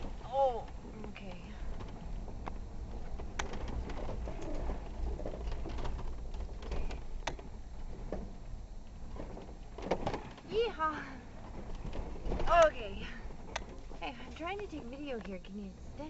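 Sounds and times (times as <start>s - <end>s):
vehicle engine rumble with rattles: 0.0s - 16.0s.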